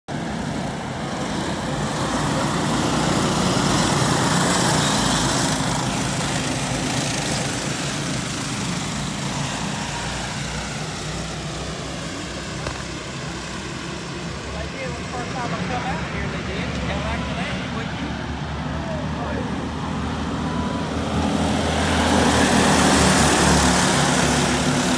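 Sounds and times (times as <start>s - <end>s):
go-kart engines buzzing: 0.1s - 24.9s.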